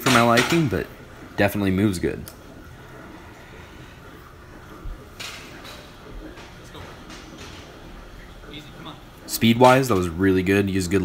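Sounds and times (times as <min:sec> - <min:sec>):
faint gym room noise: 0:00.0 - 0:11.0.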